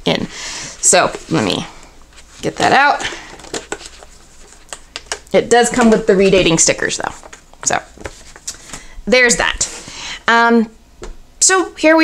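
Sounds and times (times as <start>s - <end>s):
paper and plastic rustling: 1.0s - 10.0s.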